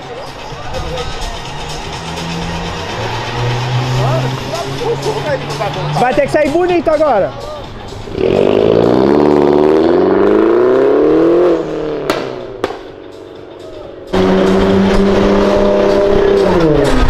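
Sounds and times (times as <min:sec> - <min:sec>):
car engine revving: 0:00.2 - 0:17.0
second car engine revving: 0:01.2 - 0:06.4, 0:07.9 - 0:13.2, 0:14.0 - 0:17.0.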